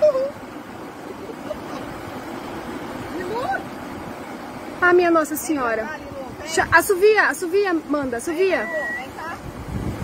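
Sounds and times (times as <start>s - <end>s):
person exclaiming: 0.0s - 0.4s.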